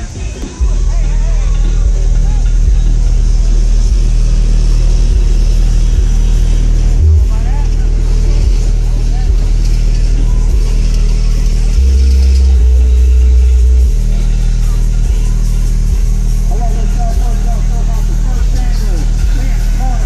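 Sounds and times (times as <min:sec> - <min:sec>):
bass-heavy music from car stereo: 0:00.0 - 0:20.0.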